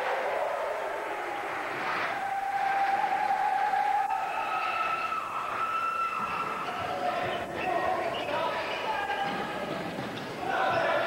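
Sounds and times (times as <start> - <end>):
crowd and court sound: 0.0 - 11.0.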